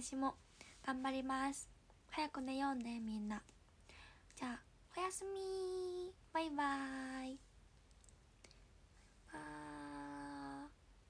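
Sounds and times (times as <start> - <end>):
woman singing a drawn out syllable: 9.3 - 10.8.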